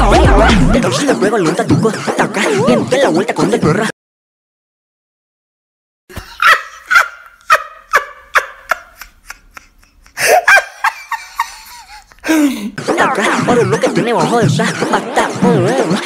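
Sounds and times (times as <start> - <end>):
person laughing: 6.1 - 12.8.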